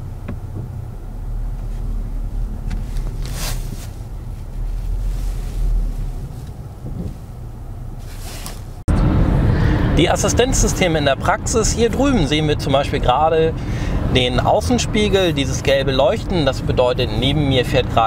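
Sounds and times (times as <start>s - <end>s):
car rumble from inside cabin: 0.0s - 18.0s
driving noise: 0.0s - 18.0s.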